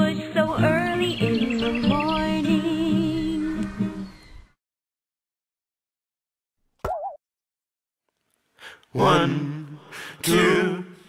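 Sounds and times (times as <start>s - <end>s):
cartoon pop: 6.8s - 7.2s.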